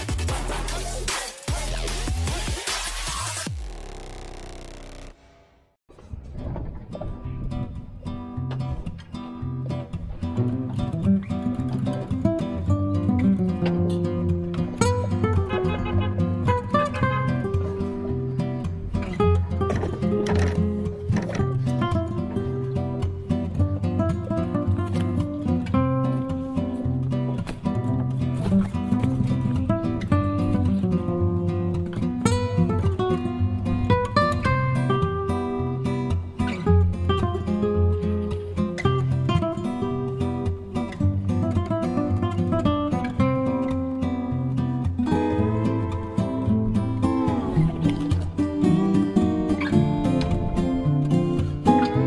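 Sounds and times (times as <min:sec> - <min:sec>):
acoustic guitar music: 0:00.0 - 0:05.2, 0:06.4 - 0:52.0.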